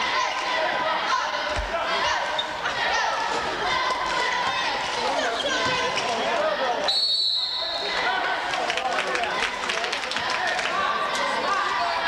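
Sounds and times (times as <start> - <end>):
crowd voices: 0.0 - 12.0
referee's whistle blast: 6.9 - 8.0.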